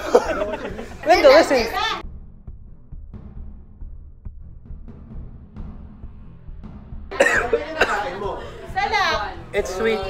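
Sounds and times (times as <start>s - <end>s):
man coughing hard: 0.0s - 0.7s, 7.1s - 8.6s
faint background music: 0.0s - 2.1s, 7.1s - 10.0s.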